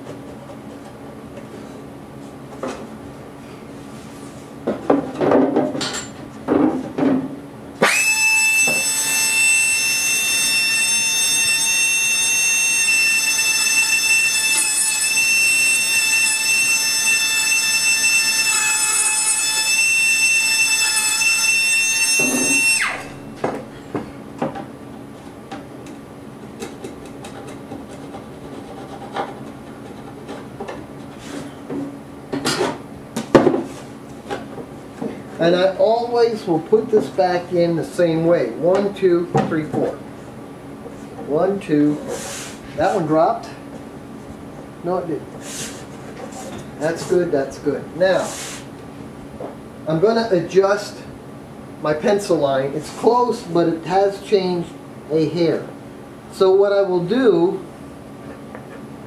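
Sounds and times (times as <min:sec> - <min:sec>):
rotary tool high whine: 0:07.8 - 0:24.2.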